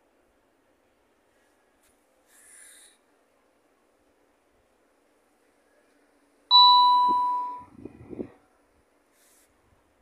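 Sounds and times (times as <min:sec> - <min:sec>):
bell-like ding: 0:06.5 - 0:07.7.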